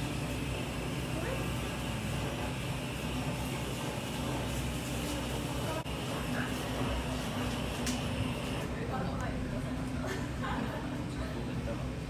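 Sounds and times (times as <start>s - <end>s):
restaurant room noise hum: 0.0s - 12.0s.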